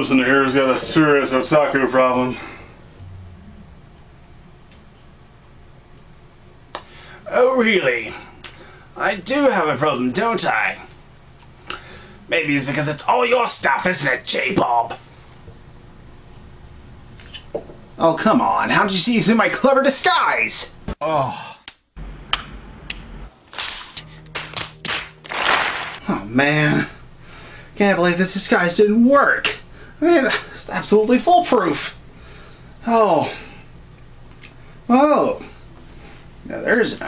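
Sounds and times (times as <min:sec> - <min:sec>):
low held musical note: 0:02.9 - 0:06.2
sharp hand claps: 0:21.6 - 0:26.0.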